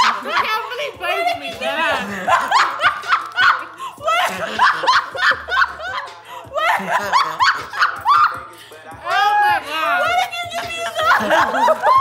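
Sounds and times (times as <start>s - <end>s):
women laughing hard: 0.0s - 8.4s, 9.1s - 12.0s.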